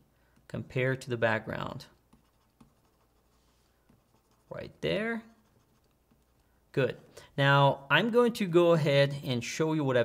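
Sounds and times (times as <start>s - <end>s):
mouse scratching on surface: 1.9s - 6.4s.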